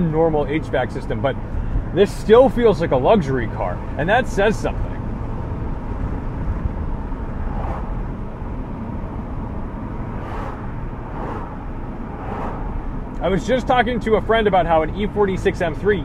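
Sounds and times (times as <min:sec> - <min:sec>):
car engine and road rumble: 0:00.0 - 0:16.0
tyre and wind noise: 0:05.3 - 0:09.5
soft whooshes: 0:07.4 - 0:08.1, 0:10.0 - 0:13.0.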